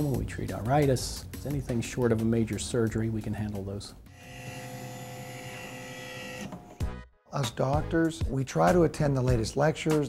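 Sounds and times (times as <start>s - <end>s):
machine whine: 4.2s - 6.8s.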